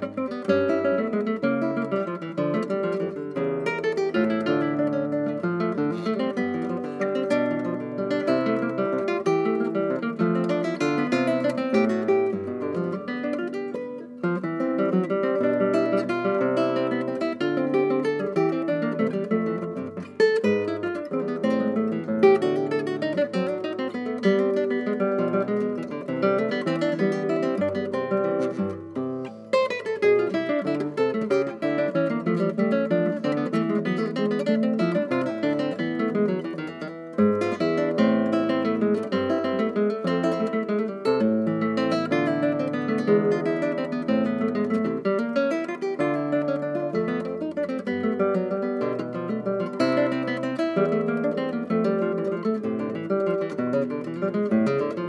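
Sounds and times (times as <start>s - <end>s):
classical guitar fingerstyle: 0.0s - 55.0s.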